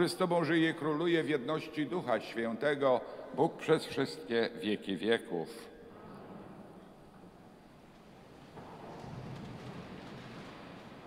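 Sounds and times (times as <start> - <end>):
people shuffling and rustling: 5.9 - 11.0.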